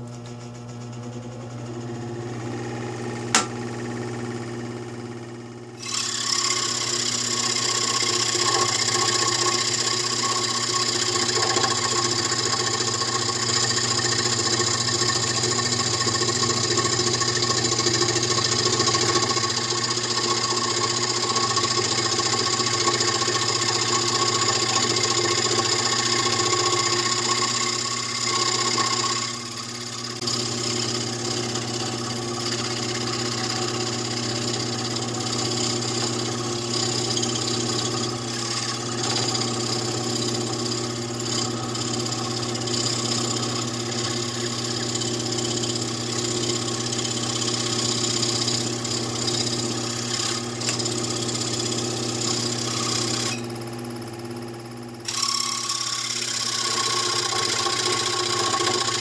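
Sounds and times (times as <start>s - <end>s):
scroll saw cutting wood: 5.8s - 53.6s, 55.0s - 59.0s.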